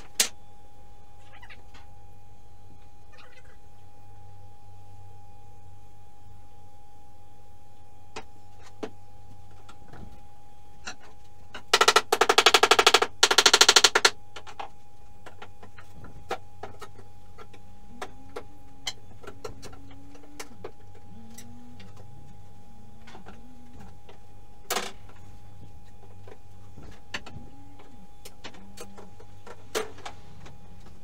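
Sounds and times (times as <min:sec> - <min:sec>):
rattling bursts of rapid clicks: 0:11.7 - 0:14.2.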